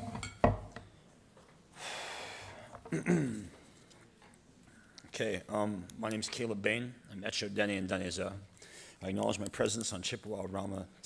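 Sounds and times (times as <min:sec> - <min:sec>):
breath close to microphone: 0:01.8 - 0:02.8, 0:08.6 - 0:09.0.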